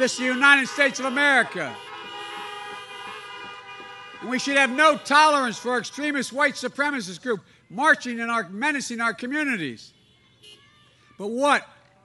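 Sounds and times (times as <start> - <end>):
many car horns honking: 0.0 - 6.4, 9.8 - 10.7.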